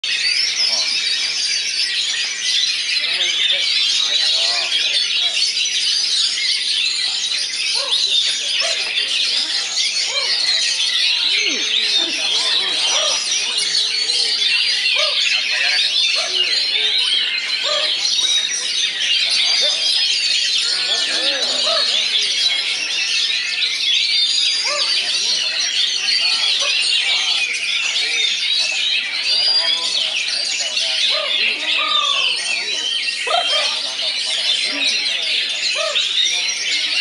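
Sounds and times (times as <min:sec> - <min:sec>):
chorus of songbirds singing: 0:00.0 - 0:37.0.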